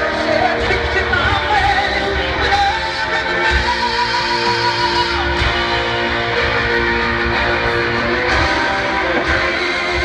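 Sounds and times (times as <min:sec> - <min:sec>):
electric guitar: 0:00.0 - 0:10.0
loud live rock music: 0:00.0 - 0:10.0.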